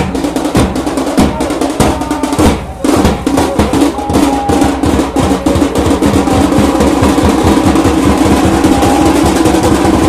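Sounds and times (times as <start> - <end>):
fast drum roll: 0.0 - 10.0.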